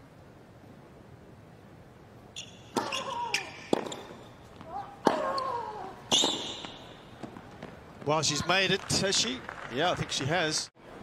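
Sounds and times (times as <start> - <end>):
racket striking tennis ball: 2.7 - 7.4.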